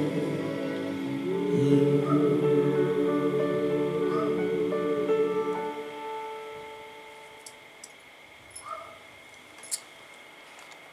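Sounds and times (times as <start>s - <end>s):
guitar chord ringing: 0.0s - 7.8s.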